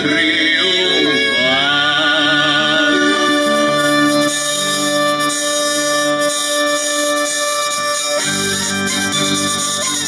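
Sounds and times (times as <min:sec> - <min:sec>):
hurdy-gurdy playing folk tune: 0:00.0 - 0:10.0.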